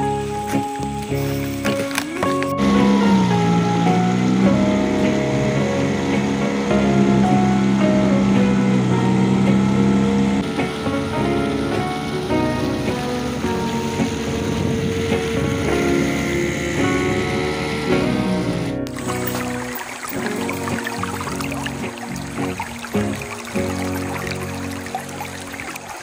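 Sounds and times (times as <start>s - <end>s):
background music with held notes: 0.0s - 26.0s.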